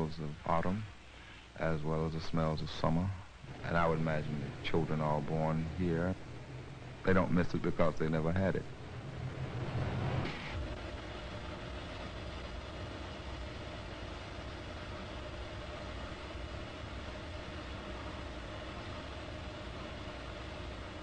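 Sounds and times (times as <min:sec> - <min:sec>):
faint steady hum: 0:00.0 - 0:21.0
mechanical running noise: 0:02.9 - 0:21.0.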